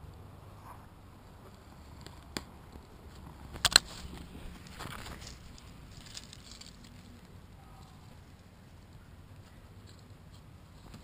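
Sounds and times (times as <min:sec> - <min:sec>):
faint rustling: 0:00.1 - 0:11.0.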